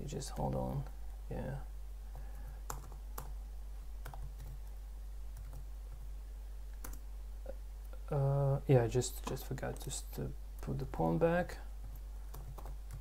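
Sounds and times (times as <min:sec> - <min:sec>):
computer keyboard keystrokes: 0:02.6 - 0:03.4, 0:04.0 - 0:04.7, 0:06.8 - 0:07.0, 0:11.9 - 0:13.0.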